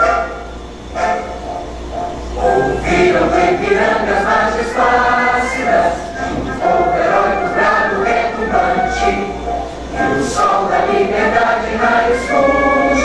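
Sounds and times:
choir singing: 0.0 - 13.0
musical accompaniment: 0.0 - 13.0.

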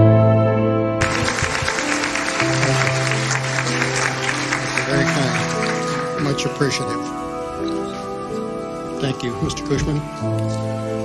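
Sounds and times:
background music: 0.0 - 11.0
audience applauding: 1.0 - 7.0.

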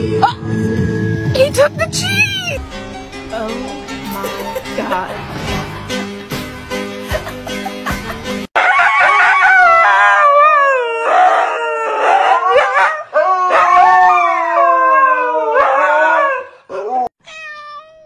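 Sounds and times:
dog howling: 8.6 - 17.1.

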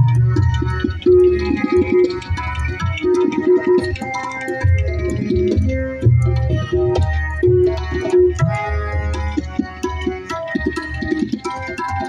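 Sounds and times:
harmonium melody: 0.0 - 12.0
tabla strokes: 0.0 - 12.0.

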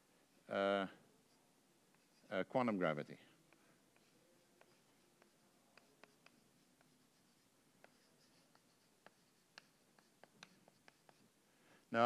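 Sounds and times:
chalk tapping and scraping: 1.3 - 12.0.

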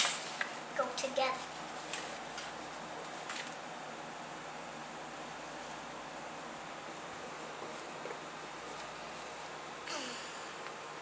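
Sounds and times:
small child vocal sounds: 9.8 - 10.5.

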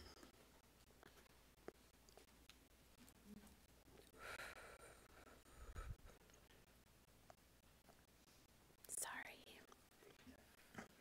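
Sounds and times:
whispering close to microphone: 8.9 - 10.8.

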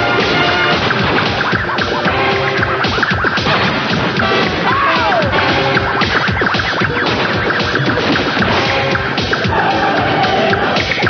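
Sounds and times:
busy cartoon music: 0.0 - 11.0
sliding pitch swoops: 0.0 - 11.0.

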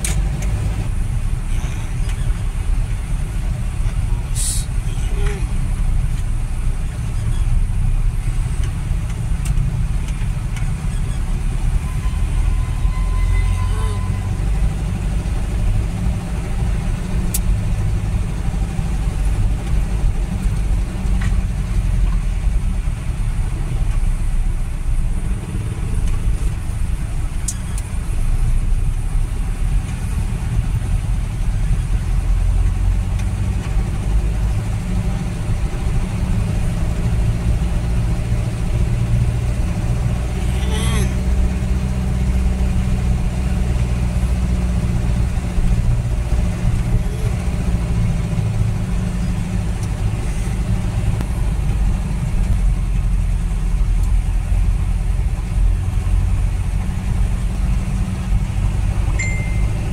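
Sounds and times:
vehicle engine and road noise: 0.0 - 59.9.

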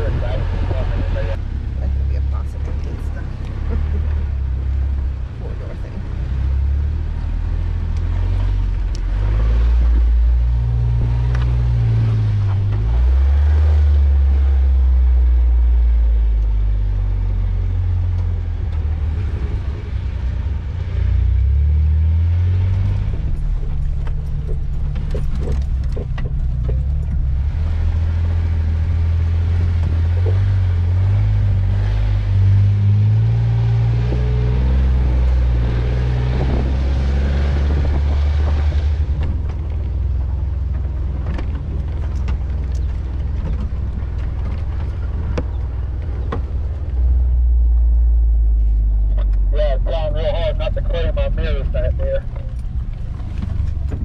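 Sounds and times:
car engine rumbling: 0.0 - 54.0.

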